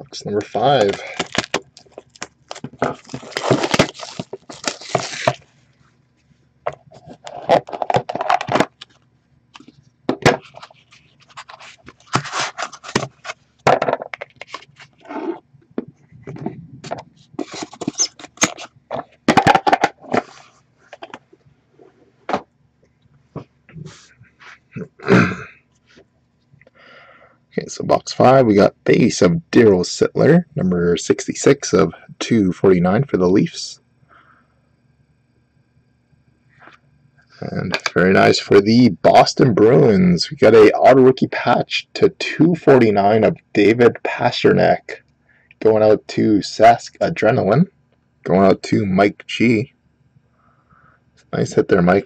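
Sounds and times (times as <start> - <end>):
cardboard scraping and rustling: 0.4 - 5.4, 10.2 - 13.4, 16.3 - 21.2.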